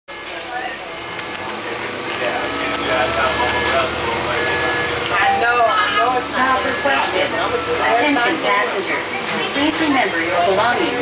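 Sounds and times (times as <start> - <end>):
bus diesel engine running: 0.1 - 11.0
indistinct talking: 0.1 - 11.0.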